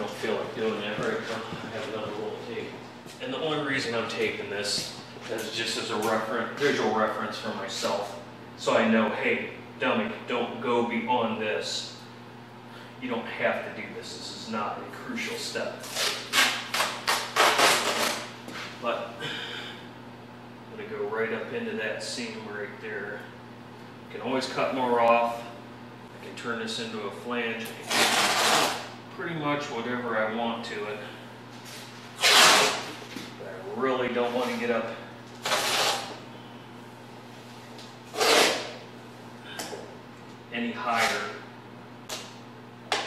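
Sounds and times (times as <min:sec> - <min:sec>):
masking tape ripping off roll: 0:15.8 - 0:18.3, 0:27.8 - 0:28.9, 0:32.2 - 0:33.0, 0:35.4 - 0:36.2, 0:38.1 - 0:38.8.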